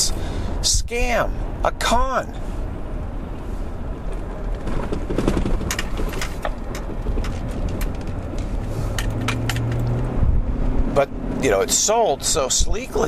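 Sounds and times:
car cabin rumble: 0.9 - 13.0
sharp clicks and knocks: 4.1 - 10.0.

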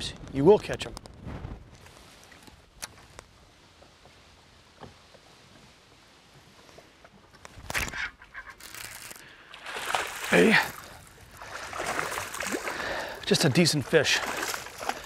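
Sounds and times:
fish splashing in water: 8.6 - 13.2, 14.0 - 15.0.

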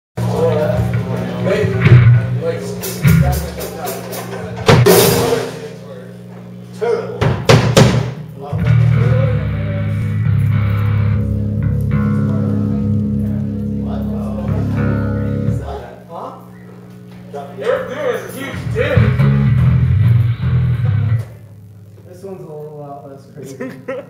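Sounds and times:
live rock band: 0.2 - 5.7, 7.4 - 15.8, 18.5 - 21.4
drum and cymbal hits: 0.2 - 5.8, 7.2 - 11.0
cymbal crash: 4.8 - 5.8
low guitar and bass chord ringing: 8.4 - 16.1, 18.3 - 21.8.

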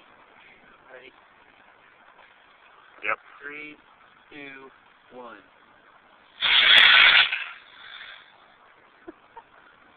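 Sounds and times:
rocket motor exhaust hiss: 6.2 - 8.5.

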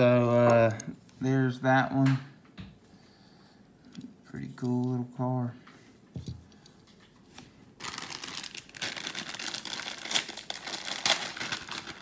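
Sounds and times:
plastic packaging crinkling: 7.4 - 12.0.

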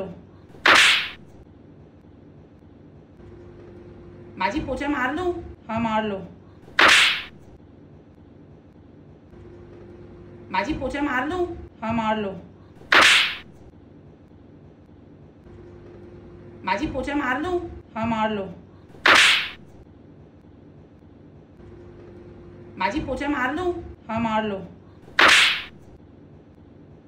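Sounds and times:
towel whip-like swish: 0.6 - 1.2, 6.7 - 7.4, 12.8 - 13.5, 19.0 - 19.6, 25.1 - 25.8.

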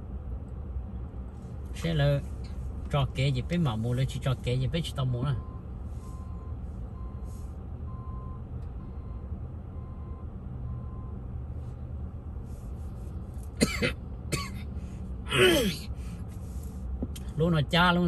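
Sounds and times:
truck engine and road rumble: 0.0 - 18.0.

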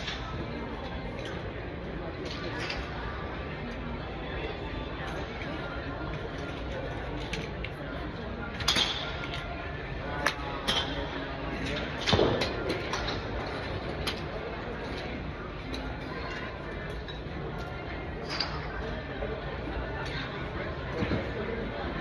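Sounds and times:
faint voices: 0.0 - 22.0
steady background noise: 0.0 - 22.0.

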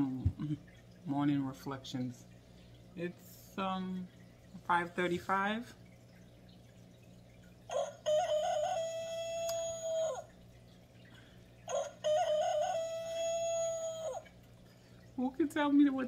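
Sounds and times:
rooster crowing: 7.7 - 10.3, 11.7 - 14.2.

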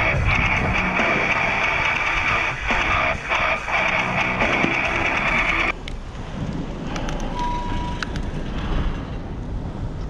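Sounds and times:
guitar music: 0.0 - 5.7
wind and bicycle road noise: 0.0 - 10.0.

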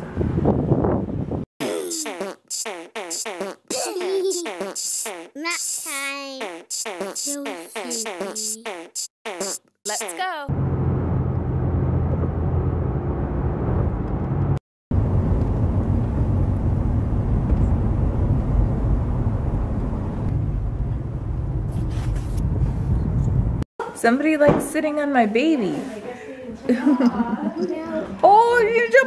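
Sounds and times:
voice: 5.4 - 6.5, 7.2 - 8.8, 9.9 - 10.5, 23.8 - 29.0
car road and engine rumble: 10.5 - 23.6.

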